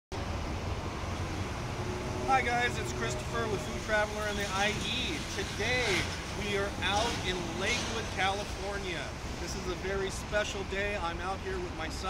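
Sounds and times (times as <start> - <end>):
low outdoor rumble: 0.2 - 12.0.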